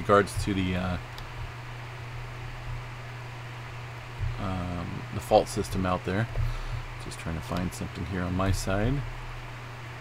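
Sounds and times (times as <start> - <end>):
steady hiss with low hum: 0.0 - 10.0.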